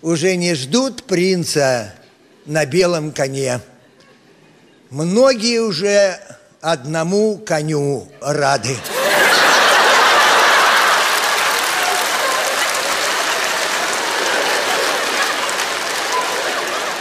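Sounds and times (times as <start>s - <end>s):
audience laughing: 8.6s - 17.0s
audience applauding: 8.9s - 17.0s.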